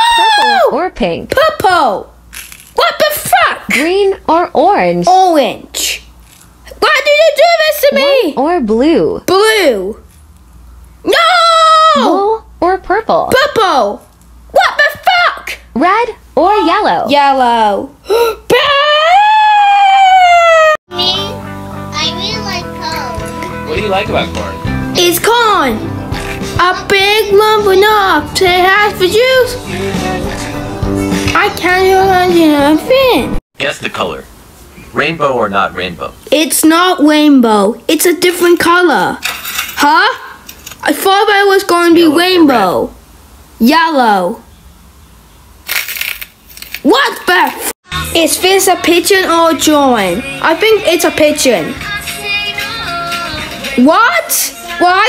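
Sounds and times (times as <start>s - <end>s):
person screaming high-pitched: 0.0s - 0.7s
ball shell crackling: 2.3s - 2.8s, 45.7s - 47.7s.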